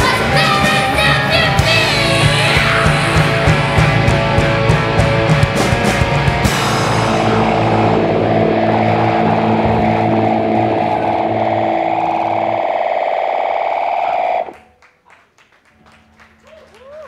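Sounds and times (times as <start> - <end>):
distorted guitars ringing chord: 0.0 - 14.6
scattered claps: 14.4 - 17.0.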